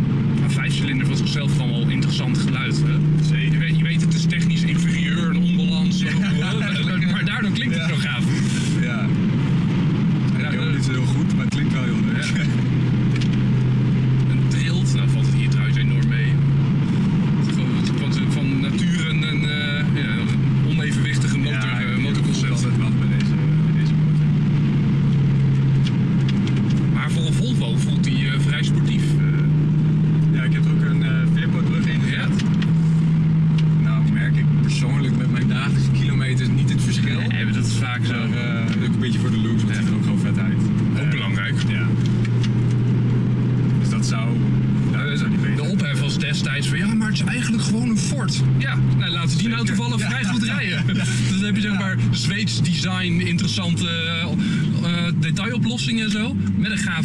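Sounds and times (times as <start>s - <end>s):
car engine droning at cruise: 0.0s - 57.0s.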